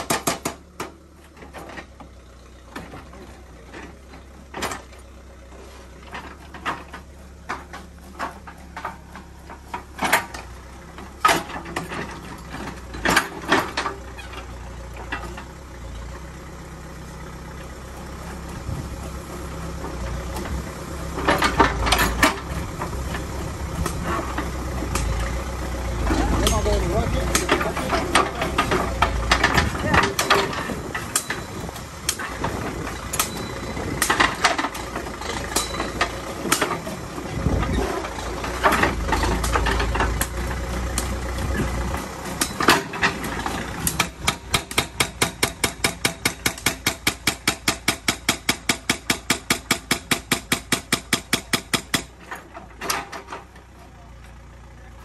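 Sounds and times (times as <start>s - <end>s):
hydraulic breaker hammering rock: 0.0s - 1.0s, 26.0s - 53.5s
diesel engine running: 0.0s - 55.0s.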